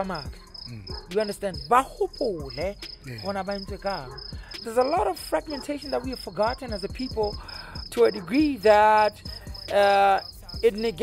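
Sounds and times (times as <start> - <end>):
crickets chirping: 0.0 - 11.0
man talking: 0.7 - 4.1.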